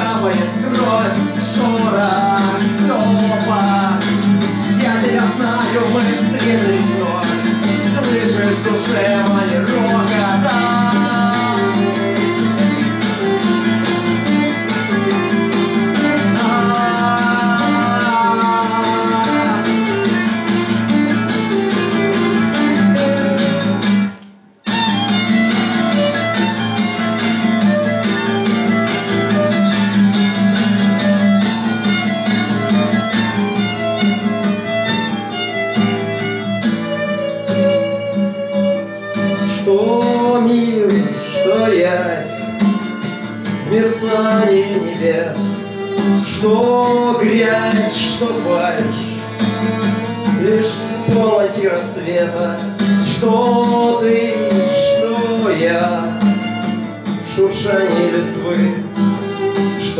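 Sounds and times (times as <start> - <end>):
acoustic guitar strummed fast: 0.0 - 59.9
violin playing melody: 4.0 - 24.0, 24.6 - 59.9.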